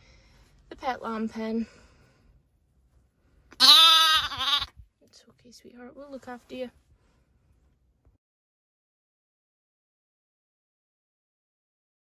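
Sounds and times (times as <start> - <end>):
lamb bleating: 3.6 - 4.8.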